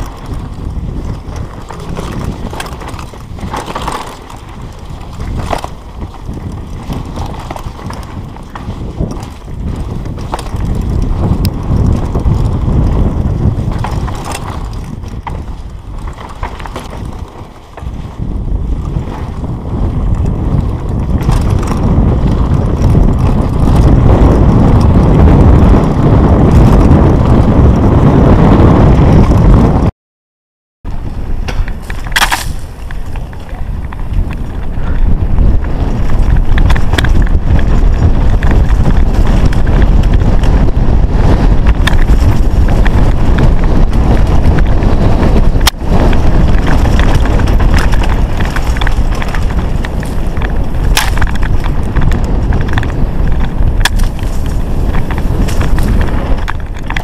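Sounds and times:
bike clicks and rattles: 0.0s - 29.9s, 30.9s - 57.0s
tyre rumble on loose dirt: 0.0s - 29.9s, 30.9s - 57.0s
wind buffeting microphone: 0.0s - 29.9s, 30.9s - 57.0s.

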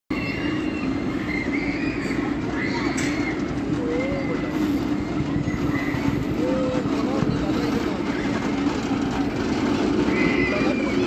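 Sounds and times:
ride machinery rumbling: 0.1s - 11.0s.

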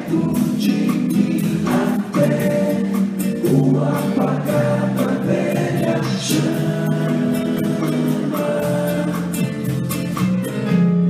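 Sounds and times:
vocal harmony: 0.0s - 10.3s
rock band playing: 0.0s - 11.0s.

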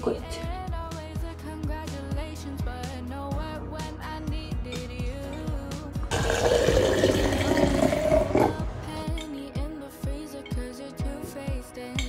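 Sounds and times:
pop music with steady beat: 0.0s - 12.0s
liquid pouring into glass jar: 6.1s - 8.7s.

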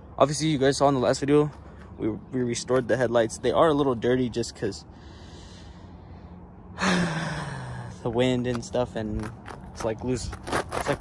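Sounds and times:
man breathing in: 4.9s - 8.0s
man sighing: 6.8s - 8.0s.

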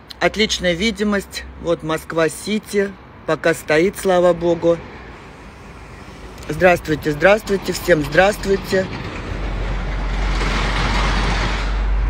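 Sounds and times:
low traffic rumble: 0.0s - 12.0s
vehicle passing: 2.9s - 12.0s.

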